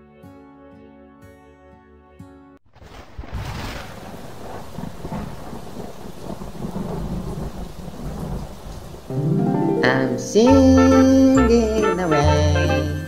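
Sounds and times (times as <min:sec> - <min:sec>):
music: 0:00.0 - 0:02.6, 0:09.1 - 0:13.0
low thunder rumble: 0:02.8 - 0:09.1
steady rain falling: 0:02.8 - 0:12.2.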